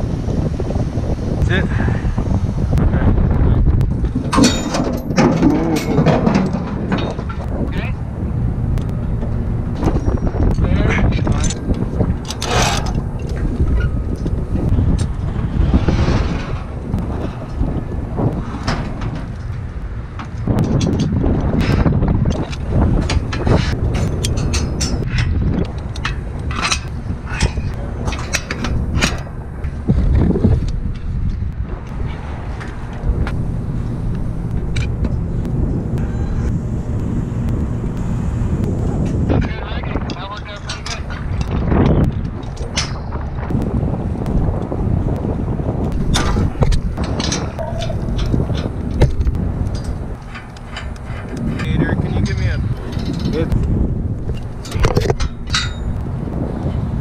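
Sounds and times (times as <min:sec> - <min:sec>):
wind rumbling on microphone: 0:00.0 - 0:57.0
metallic clicks of tools and gear: 0:46.0 - 0:56.0.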